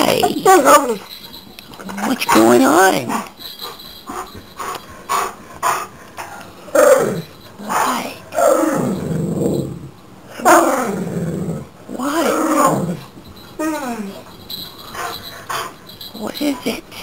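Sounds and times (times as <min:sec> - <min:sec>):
dog grumbling calls: 0:06.2 - 0:14.1.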